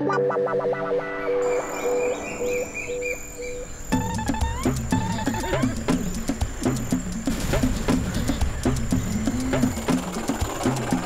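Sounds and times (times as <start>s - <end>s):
soft background music: 0.0s - 11.0s
bird chirping: 1.0s - 11.0s.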